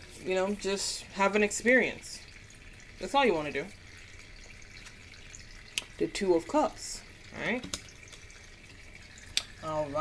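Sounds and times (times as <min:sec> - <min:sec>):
water fountain trickling over stones: 0:00.0 - 0:10.0.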